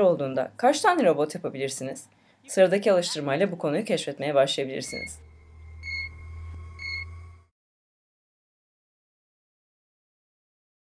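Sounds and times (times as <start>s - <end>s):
steady low hum: 4.4s - 7.5s
short high-pitched beeps: 4.8s - 7.4s.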